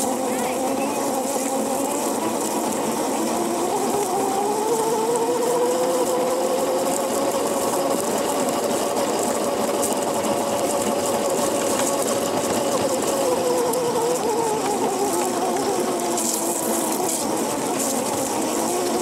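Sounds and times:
electric go-kart motor whining: 0.0s - 19.0s
wheels rolling over grass and dirt: 0.0s - 19.0s.

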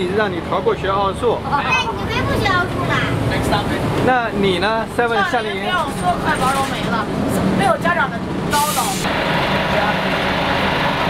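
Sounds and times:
voices talking: 0.0s - 9.1s
bus engine rumble: 0.0s - 11.0s
short sharp hiss: 8.5s - 9.1s.

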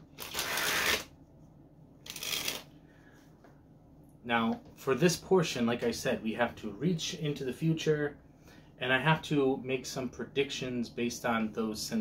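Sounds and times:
playing cards shuffling: 0.2s - 1.1s, 2.0s - 2.7s.

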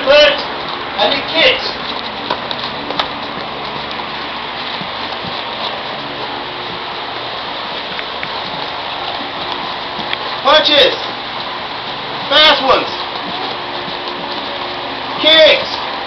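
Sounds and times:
room noise hiss: 0.0s - 16.0s
padded gloves knocking: 12.6s - 15.1s.

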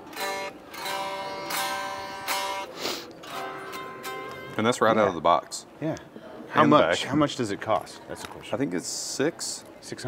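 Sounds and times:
electric guitar picked notes: 0.0s - 4.8s.

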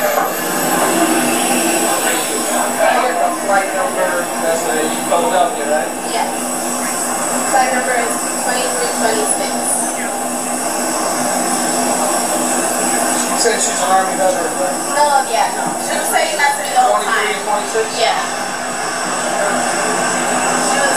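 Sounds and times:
people talking indistinctly: 0.0s - 20.9s
steady cabin hum: 0.0s - 20.9s.

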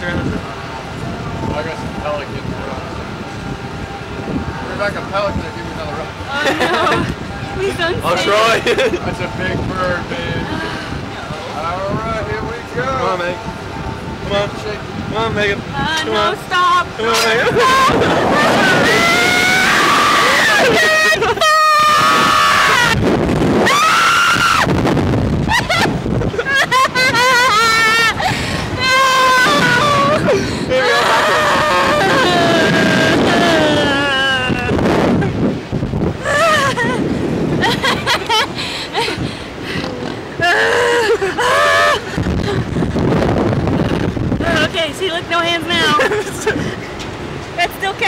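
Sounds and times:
people screaming and yelling: 17.1s - 35.3s, 40.4s - 42.4s.

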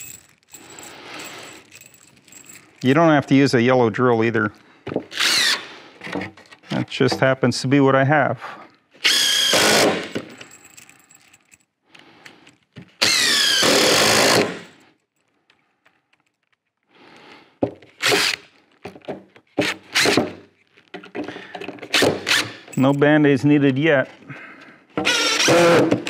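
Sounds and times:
cordless drill driving screws: 5.1s - 5.7s, 9.0s - 10.3s, 13.0s - 14.7s, 18.0s - 18.5s, 19.6s - 20.4s, 21.9s - 22.7s, 25.0s - 26.0s.

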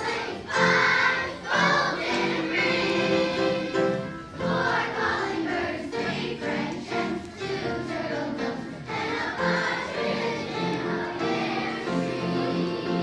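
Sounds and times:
children's choir singing: 0.0s - 13.0s
instrumental accompaniment: 0.0s - 13.0s.

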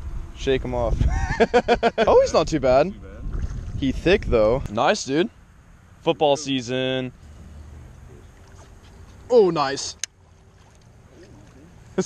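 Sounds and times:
wind rumble on microphone: 0.0s - 4.8s.

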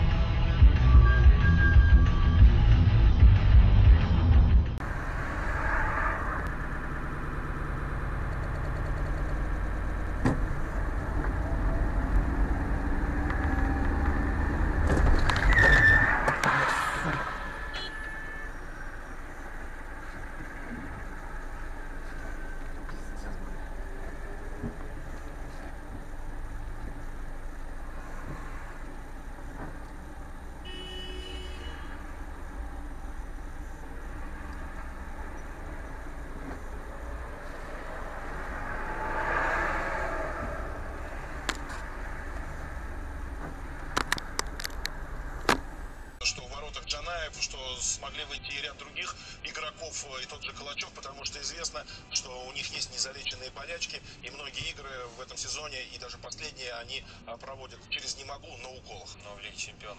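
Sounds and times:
car engine rumble: 0.0s - 56.0s.

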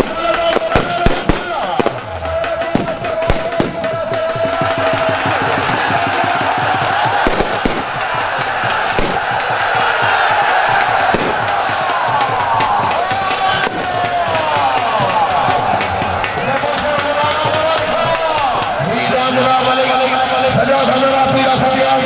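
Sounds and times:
crowd shouting: 0.0s - 22.0s.

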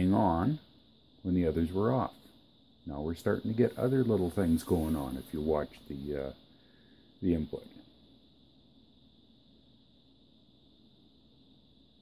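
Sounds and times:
high hiss: 0.0s - 12.0s.

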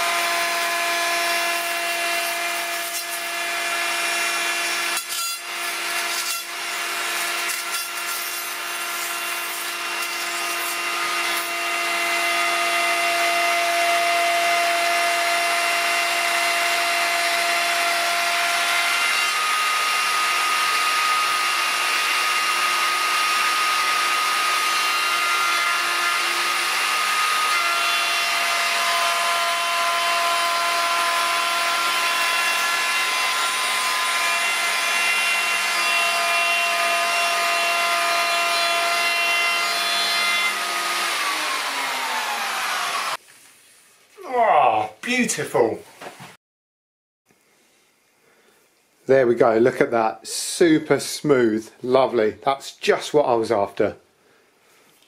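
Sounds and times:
electric router whining: 0.0s - 43.2s
router cutting wood: 0.0s - 43.2s.

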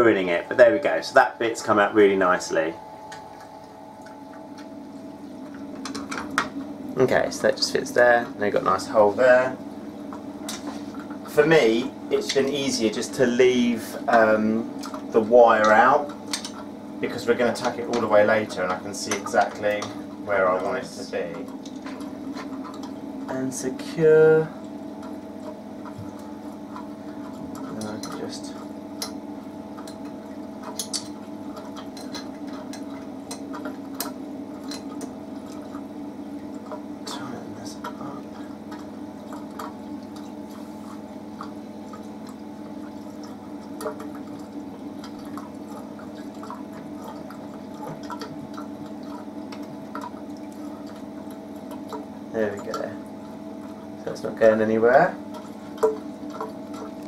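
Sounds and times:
aquarium pump hum: 0.0s - 57.0s
water trickling and dripping: 0.2s - 57.0s.

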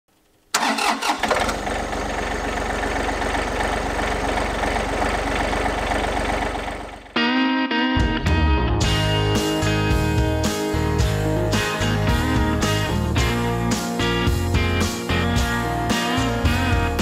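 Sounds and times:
tractor diesel engine starting and idling: 0.5s - 7.2s, 8.8s - 17.0s
guitar music: 6.5s - 17.0s.

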